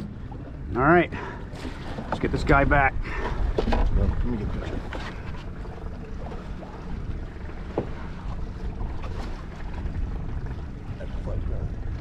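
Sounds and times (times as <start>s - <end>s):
low wind: 0.0s - 12.0s
water noise: 0.0s - 12.0s.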